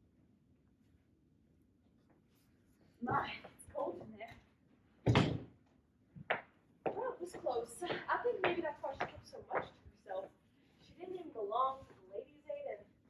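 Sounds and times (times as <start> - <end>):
door thumping shut: 5.1 - 5.5.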